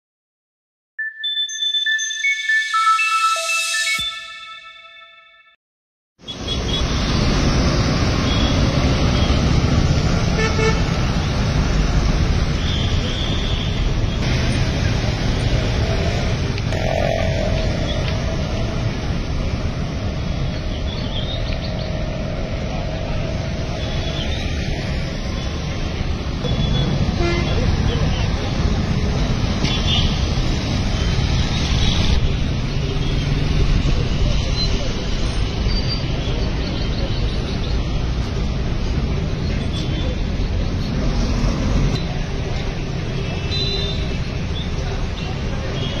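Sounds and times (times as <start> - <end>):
cars passing: 6.2 - 46.0
road traffic noise: 6.2 - 46.0.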